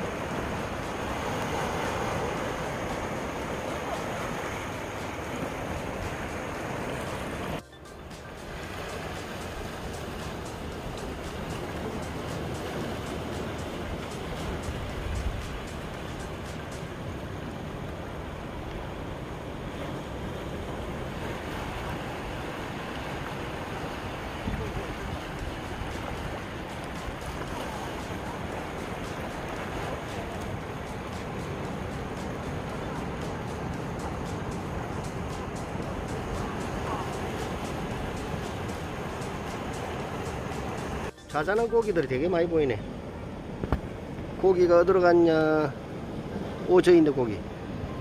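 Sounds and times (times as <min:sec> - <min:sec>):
surf breaking over rocks: 0:00.0 - 0:42.7
shallow water washing over stones: 0:20.5 - 0:31.4.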